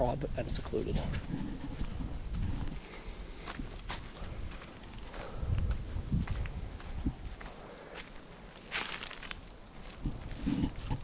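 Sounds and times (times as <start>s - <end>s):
footsteps on gravel: 1.0s - 11.0s.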